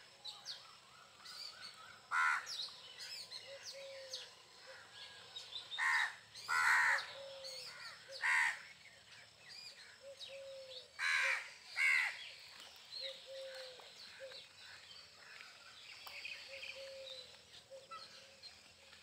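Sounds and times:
small birds chirping: 0.0s - 19.0s
crows cawing: 2.1s - 2.5s, 5.8s - 7.2s, 7.8s - 8.6s, 11.0s - 12.2s.

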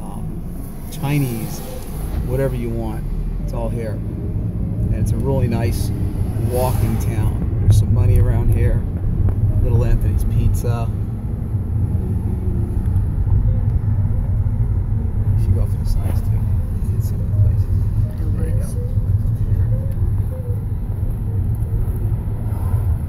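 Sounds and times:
car engine and road noise: 0.0s - 23.0s.

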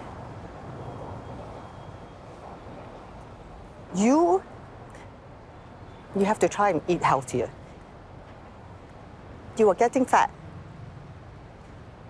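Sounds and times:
distant traffic: 0.0s - 12.0s.

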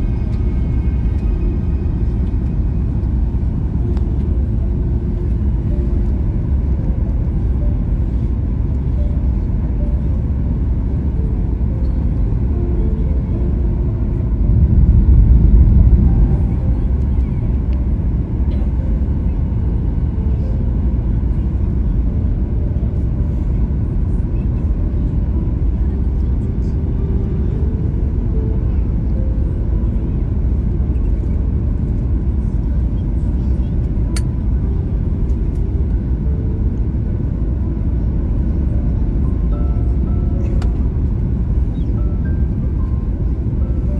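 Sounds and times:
airplane engines rumbling: 0.0s - 43.9s.

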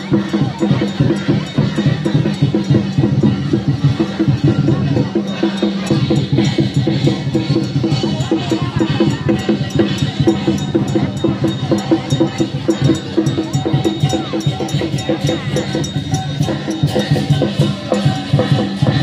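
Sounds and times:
crowd voices: 0.0s - 19.0s
drums and clanging metal percussion: 0.0s - 19.0s.

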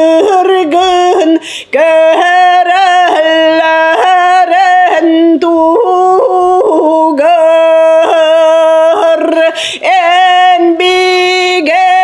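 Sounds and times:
woman singing solo: 0.0s - 12.0s.

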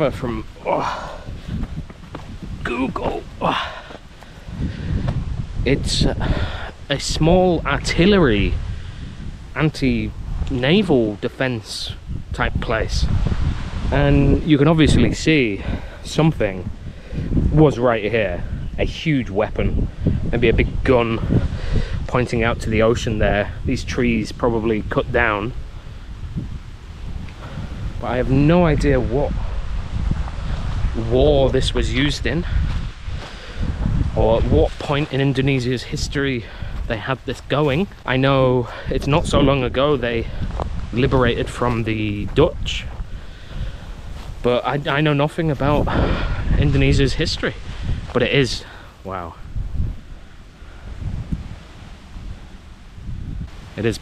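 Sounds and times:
faint outdoor hiss: 0.0s - 54.0s
wind buffeting microphone: 0.0s - 54.0s.

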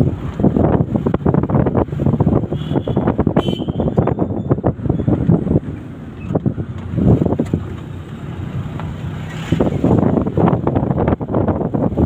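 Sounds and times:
vehicle running rumble: 0.0s - 12.0s
wind buffeting microphone: 0.0s - 12.0s.

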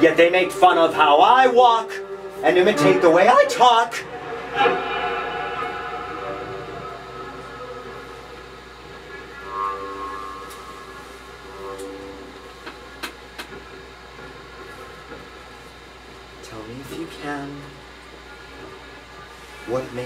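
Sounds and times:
sustained instrumental chord: 0.0s - 12.9s.

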